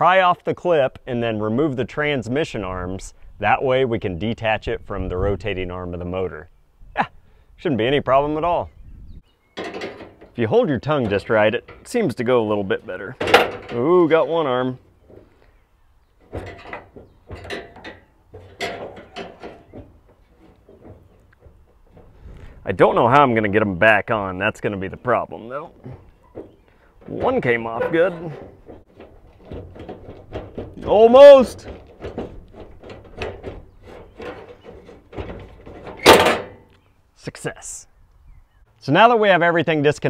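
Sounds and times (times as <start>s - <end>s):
metal clunk: 9.5s - 23.3s, 25.7s - 36.8s
tool clicking and scraping on metal: 9.6s - 10.4s, 13.2s - 14.3s, 16.2s - 22.2s, 25.8s - 36.8s.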